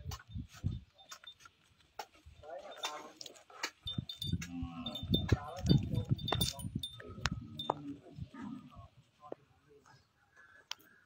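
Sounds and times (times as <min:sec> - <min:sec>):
metallic clinking and jingling: 0:00.2 - 0:08.2.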